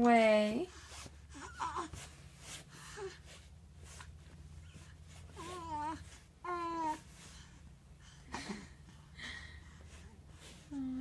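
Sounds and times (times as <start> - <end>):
low room hum: 0.0 - 11.0
baby breathing: 0.7 - 11.0
baby vocal sound: 1.3 - 2.1.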